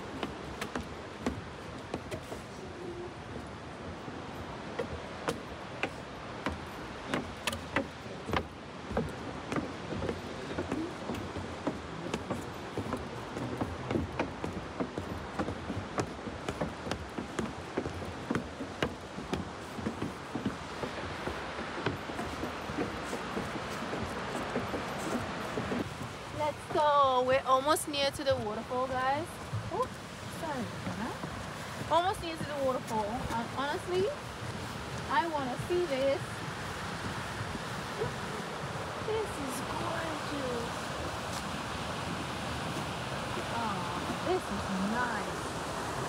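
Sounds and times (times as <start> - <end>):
footsteps on wooden boards: 0.0 - 46.0.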